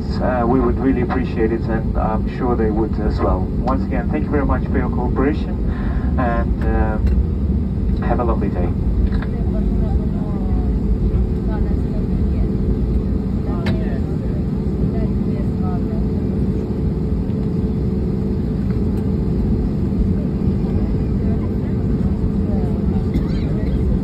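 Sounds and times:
jet engine cabin rumble: 0.0s - 24.0s
faint voices: 7.9s - 24.0s.

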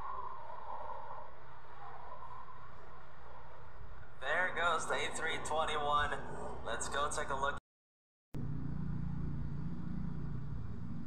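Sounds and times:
distant jet engines rumbling: 8.4s - 11.0s.

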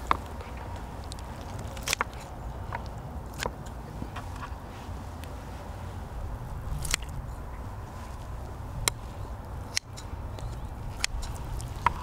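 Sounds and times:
steady low rumble: 0.0s - 12.0s
scissors cutting meat: 6.7s - 7.2s.

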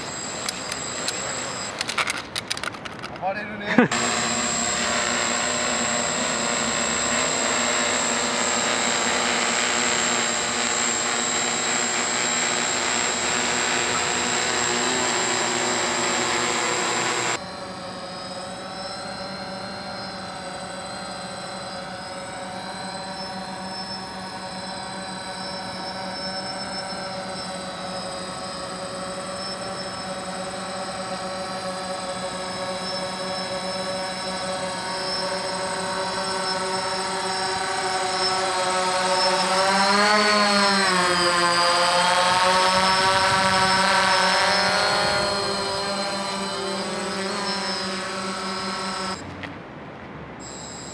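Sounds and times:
quadcopter propellers buzzing: 0.0s - 49.4s, 50.4s - 50.9s
quadcopter whine: 0.0s - 50.9s.

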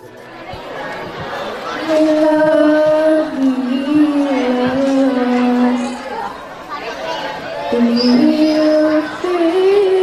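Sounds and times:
girl singing into microphone: 1.8s - 6.1s, 7.7s - 10.0s.

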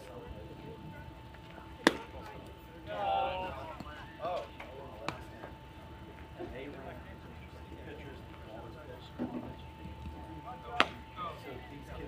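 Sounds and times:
voices calling out: 0.2s - 12.0s
baseball hitting catcher's mitt: 1.8s - 2.1s, 10.8s - 11.0s.

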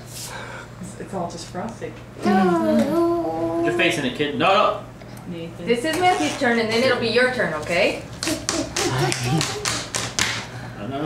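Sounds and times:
people laughing: 8.2s - 9.9s
quick hand slaps: 8.2s - 10.5s.

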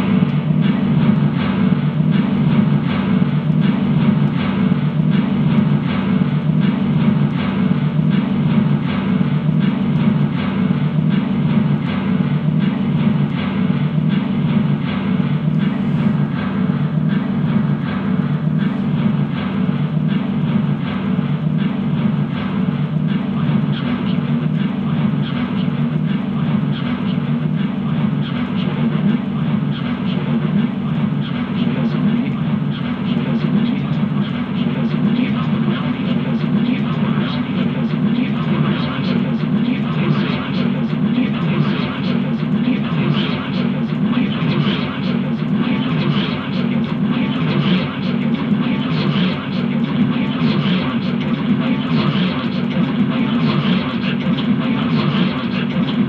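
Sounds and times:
droning noise music: 0.0s - 56.0s.

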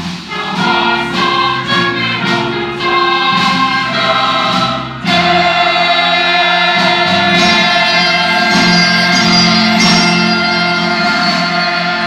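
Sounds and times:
mixed choir singing: 0.0s - 12.0s
orchestral accompaniment: 0.0s - 12.0s.

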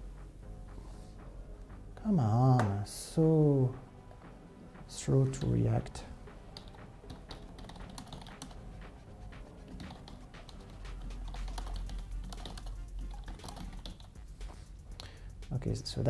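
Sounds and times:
typing on computer keyboard: 6.6s - 8.6s, 9.7s - 14.2s.

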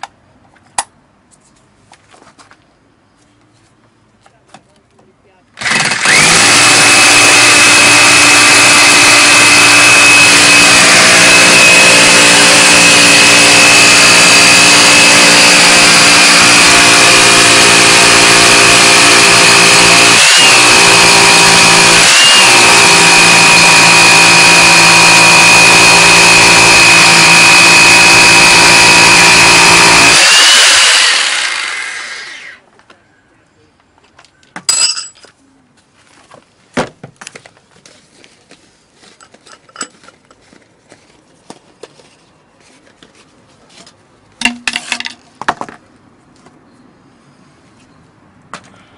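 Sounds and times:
rotary hammer drilling into concrete: 5.6s - 32.6s.

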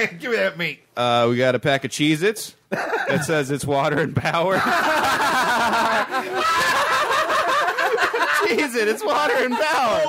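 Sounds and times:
people laughing: 2.7s - 10.0s.

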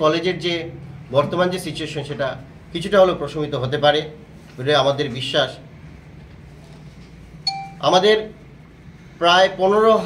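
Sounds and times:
electronic chime: 7.5s - 7.9s.

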